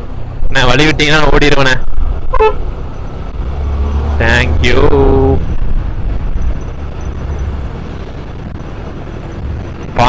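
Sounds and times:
road and wind noise: 0:00.0 - 0:10.0
motorcycle engine drone: 0:01.8 - 0:10.0.

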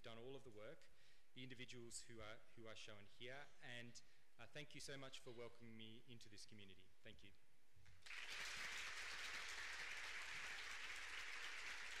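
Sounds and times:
audience applauding: 0:08.0 - 0:12.0.

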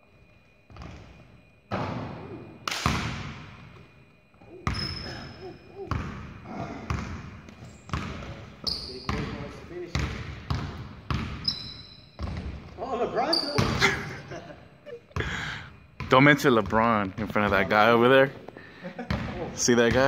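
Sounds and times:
basketball hitting rim: 0:01.7 - 0:03.5, 0:05.9 - 0:08.5, 0:09.1 - 0:11.4, 0:13.6 - 0:13.9
sneaker squeaks on hardwood: 0:04.6 - 0:06.3, 0:07.4 - 0:13.8
basketball dribbling on floor: 0:06.9 - 0:11.5, 0:16.0 - 0:17.7.

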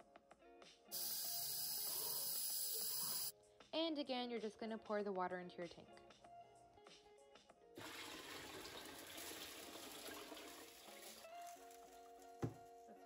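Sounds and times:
soft background music: 0:00.0 - 0:13.0
water pouring into aquarium: 0:07.8 - 0:11.5.

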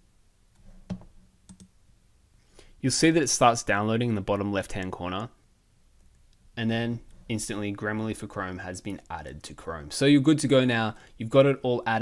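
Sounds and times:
computer mouse clicks: 0:00.5 - 0:01.7.

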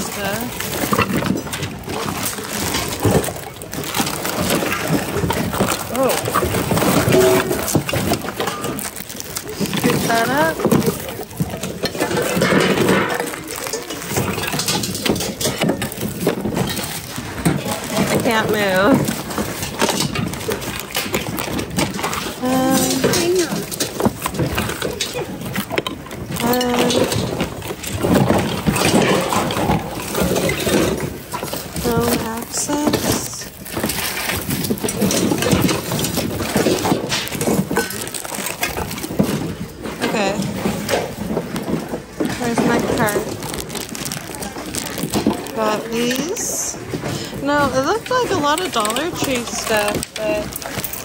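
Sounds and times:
hard items knocking and clinking: 0:00.0 - 0:51.0
plastic bags rustling: 0:00.0 - 0:51.0.

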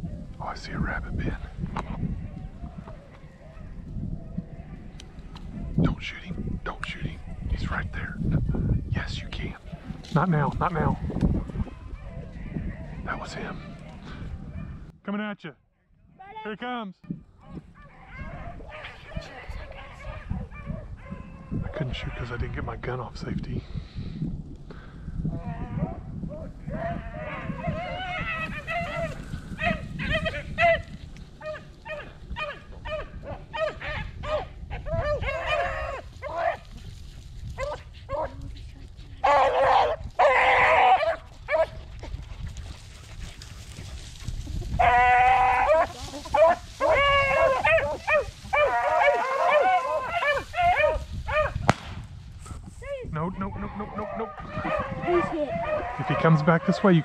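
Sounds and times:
beagles baying: 0:25.4 - 0:36.7, 0:39.2 - 0:41.8, 0:44.7 - 0:51.7, 0:53.5 - 0:57.0.

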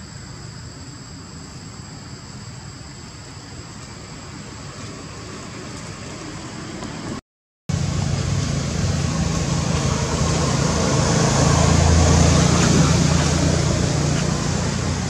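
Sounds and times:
low rumbling noise: 0:07.7 - 0:15.0.

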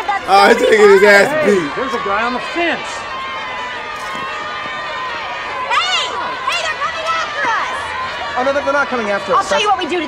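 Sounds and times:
high raised voices: 0:00.0 - 0:02.0
crowd shouting: 0:00.0 - 0:10.0.

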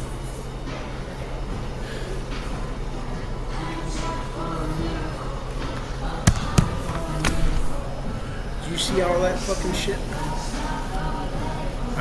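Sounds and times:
cafe room hum: 0:00.0 - 0:12.0.

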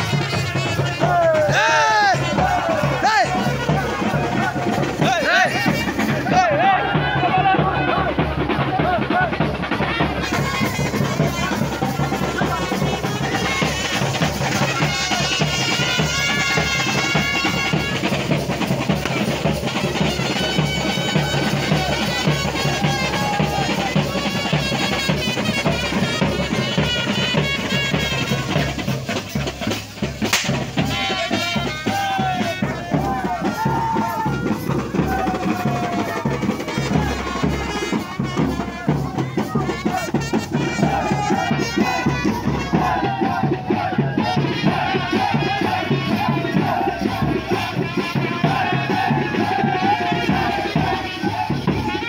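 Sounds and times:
band music with drums: 0:00.0 - 0:52.0
crowd shouting and cheering: 0:00.0 - 0:52.0.

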